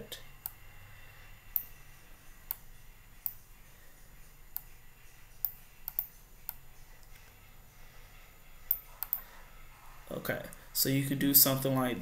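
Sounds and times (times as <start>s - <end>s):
computer mouse clicking: 0.4s - 0.6s, 1.5s - 1.8s, 2.4s - 3.5s, 4.5s - 4.8s, 5.4s - 7.4s, 8.6s - 9.3s.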